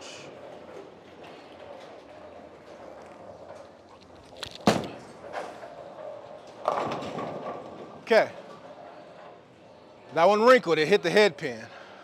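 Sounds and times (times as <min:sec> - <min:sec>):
bowling ball rolling on wooden lane: 0:01.0 - 0:09.1
bowling pins crashing: 0:04.6 - 0:05.6, 0:06.4 - 0:08.0.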